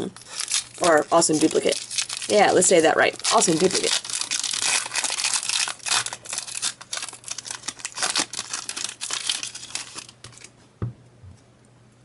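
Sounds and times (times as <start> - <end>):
foil wrapper crinkling and tearing: 0.0 - 10.5.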